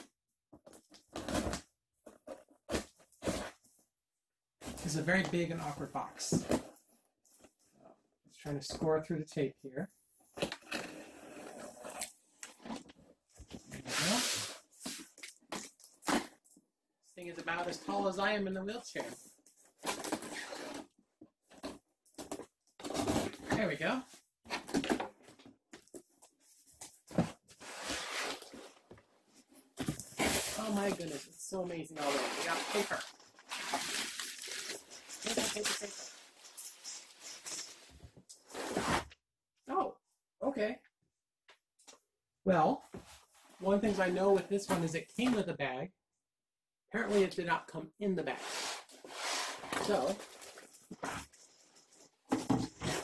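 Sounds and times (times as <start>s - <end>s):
packing paper rustling: 32.0s - 37.7s
box scraping on table: 38.5s - 39.1s, 48.3s - 50.1s.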